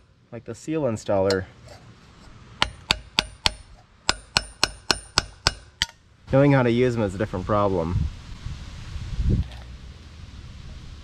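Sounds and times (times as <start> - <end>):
hammer tapping metal tool: 2.6 - 6.0.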